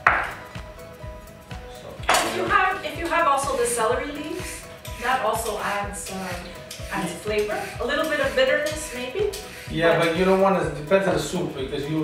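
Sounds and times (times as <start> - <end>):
knife chopping on wooden board: 0.0 - 0.4
quiet background music: 0.0 - 12.0.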